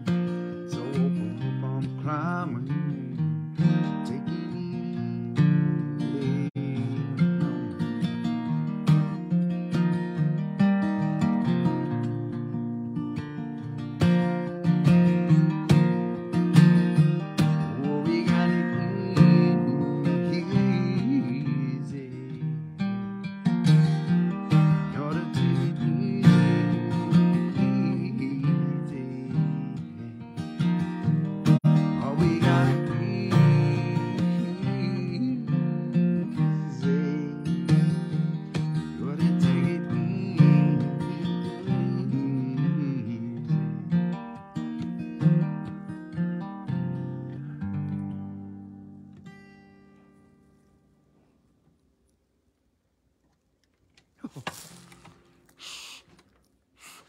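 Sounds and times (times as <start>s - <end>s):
man singing: 0.0s - 8.3s, 14.8s - 22.8s, 23.8s - 44.2s
acoustic guitar strumming: 0.0s - 51.1s.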